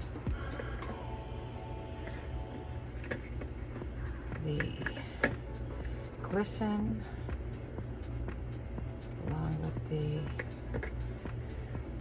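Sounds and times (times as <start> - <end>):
low hum: 0.0 - 12.0
quiet background music: 0.0 - 12.0.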